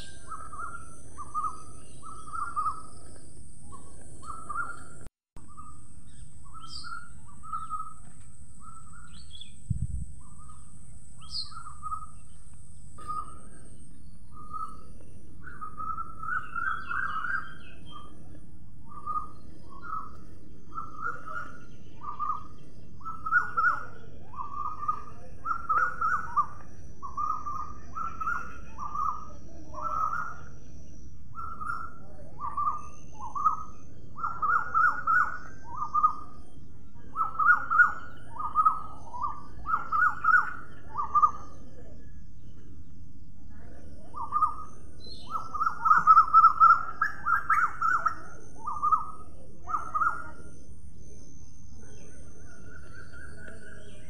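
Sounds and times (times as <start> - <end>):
parrots calling: 31.4 - 36.4, 37.1 - 41.6, 44.1 - 50.4.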